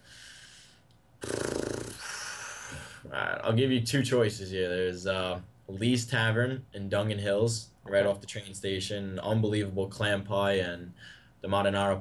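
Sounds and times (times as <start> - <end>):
man exhaling softly: 1.9 - 3.1.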